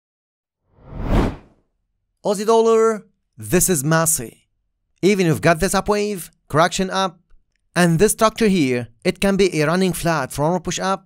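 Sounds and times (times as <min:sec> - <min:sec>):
whoosh sound effect: 0:00.8 - 0:01.5.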